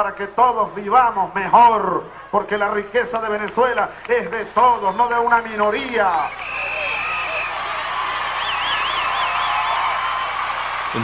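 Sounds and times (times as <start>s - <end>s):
crowd cheering and shouting: 4.6s - 11.0s
high warbling whistle: 6.1s - 7.6s.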